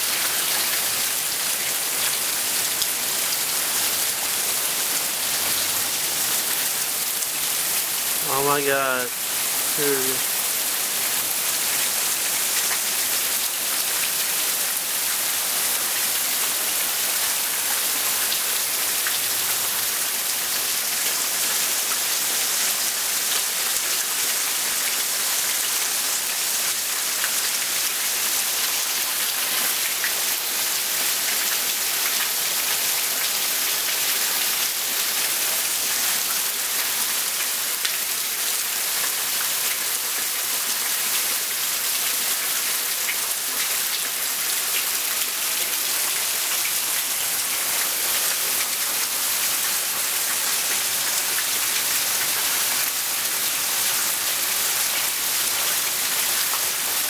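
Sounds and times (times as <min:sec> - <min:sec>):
steady rain falling: 0:00.0 - 0:57.0.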